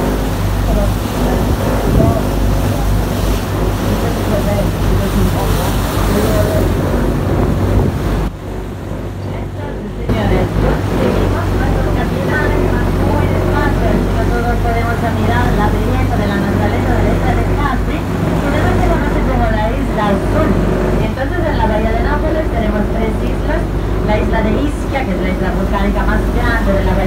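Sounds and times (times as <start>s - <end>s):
boat engine running: 0.0s - 27.0s
water rushing from wake: 0.0s - 27.0s
indistinct voices: 9.1s - 27.0s.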